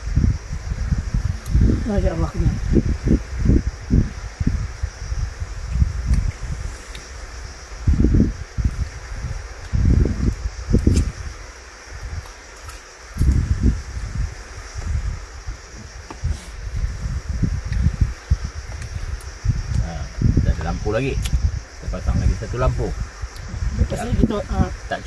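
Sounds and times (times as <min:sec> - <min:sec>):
wind gusting against microphone: 0:00.0 - 0:25.0.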